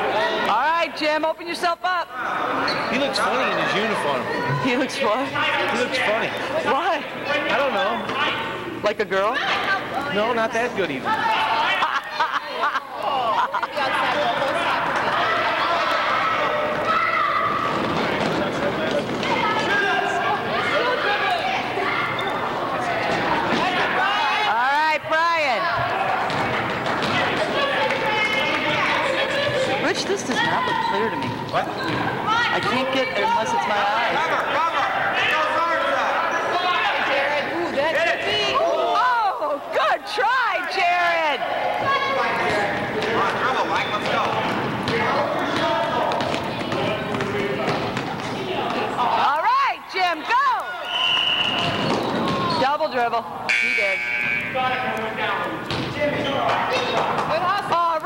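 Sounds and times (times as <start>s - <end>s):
basketball bouncing on gym floor: 25.7s - 27.4s, 30.3s - 32.1s, 55.7s - 56.0s
basketball bouncing on court: 25.7s - 28.4s, 30.3s - 32.2s, 43.9s - 48.8s, 51.5s - 52.7s, 55.6s - 56.0s.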